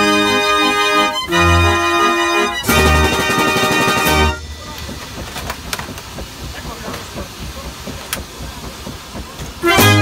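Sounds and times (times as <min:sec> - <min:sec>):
steady rushing hiss: 0:00.3 - 0:10.0.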